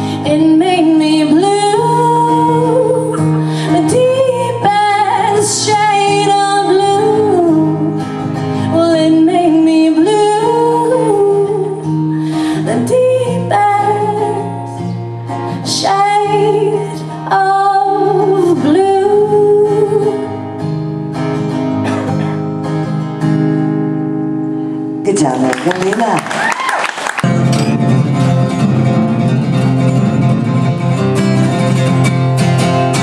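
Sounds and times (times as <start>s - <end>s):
woman singing wordless melody: 0.0s - 20.6s
strummed acoustic guitars: 0.0s - 25.5s, 27.2s - 33.0s.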